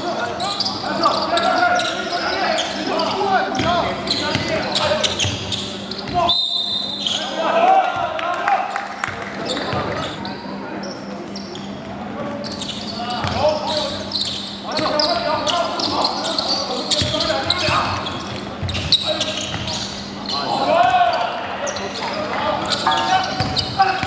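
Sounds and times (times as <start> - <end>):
voices in echoing gym: 0.0 - 24.0.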